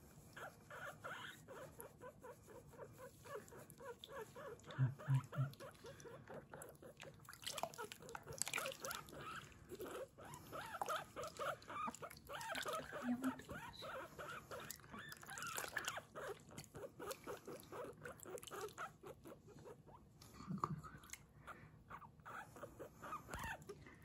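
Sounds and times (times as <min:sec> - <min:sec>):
guinea pig squeaking: 0:00.4 - 0:20.0, 0:21.9 - 0:23.6.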